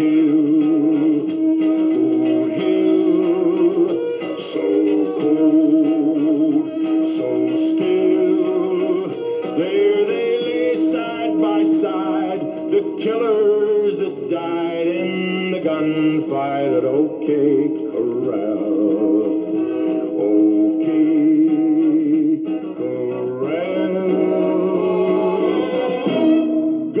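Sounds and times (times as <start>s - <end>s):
tape recorder playing music: 0.0s - 27.0s.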